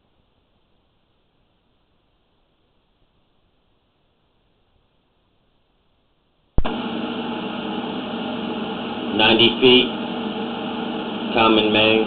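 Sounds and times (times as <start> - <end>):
machine hum with held tones: 6.6 - 12.0.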